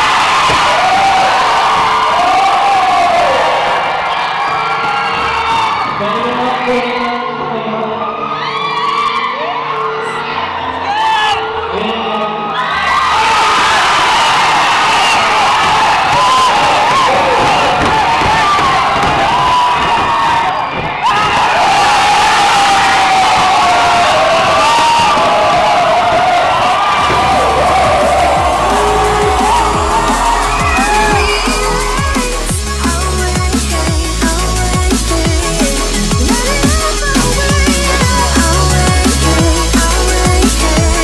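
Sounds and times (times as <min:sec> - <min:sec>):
crowd cheering and screaming: 0:00.0 - 0:41.0
music with heavy bass: 0:27.0 - 0:41.0.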